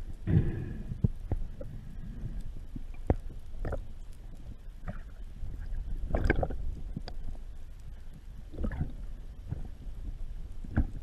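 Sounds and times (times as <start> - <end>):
muffled underwater rumble: 0.0 - 11.0.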